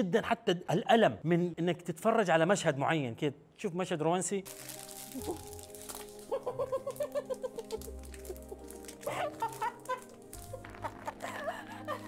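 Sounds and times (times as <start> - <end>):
soft sustained background music: 1.6 - 12.0.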